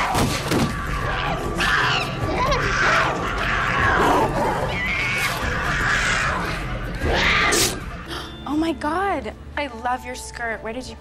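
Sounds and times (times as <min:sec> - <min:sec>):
wild animal cries: 0:00.7 - 0:08.1.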